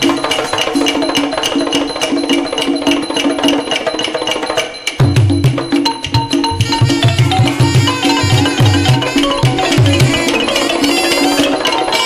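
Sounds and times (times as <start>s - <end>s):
classical ensemble melody: 6.6s - 12.0s.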